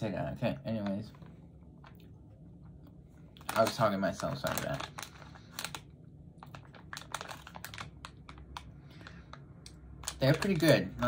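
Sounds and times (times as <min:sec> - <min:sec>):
plastic pouch crinkling: 0:03.2 - 0:11.0.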